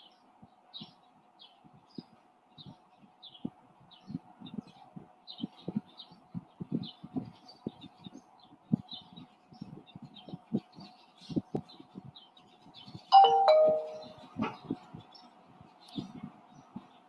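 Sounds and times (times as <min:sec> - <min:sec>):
two-note doorbell chime: 0:13.2 - 0:14.2.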